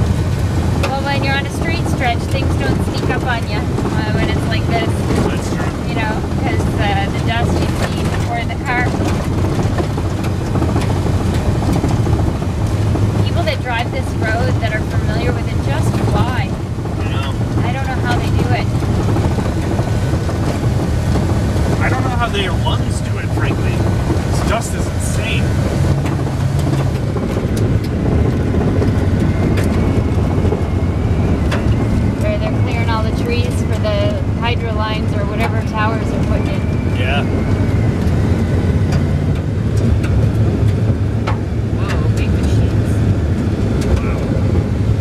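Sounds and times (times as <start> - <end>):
van engine drone: 0.0 - 45.0.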